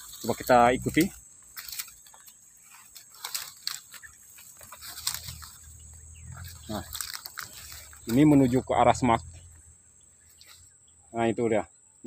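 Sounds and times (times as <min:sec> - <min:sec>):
footsteps crunching through dry litter: 0:00.0 - 0:10.8
high insect hum: 0:00.0 - 0:12.0.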